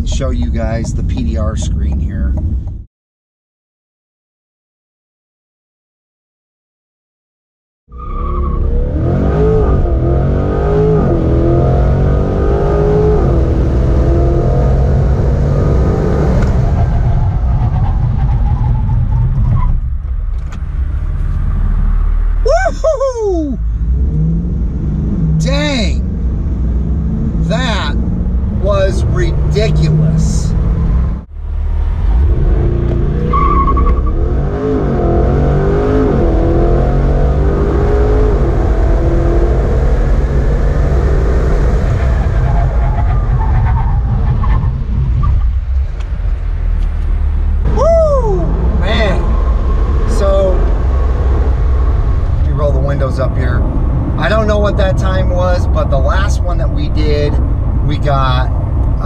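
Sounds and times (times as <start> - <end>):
car engine accelerating: 0.0 - 2.8, 8.0 - 59.0.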